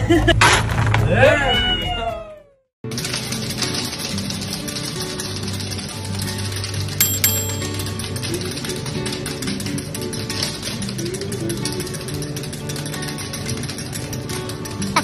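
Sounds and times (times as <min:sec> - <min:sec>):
background music: 0:02.9 - 0:15.0.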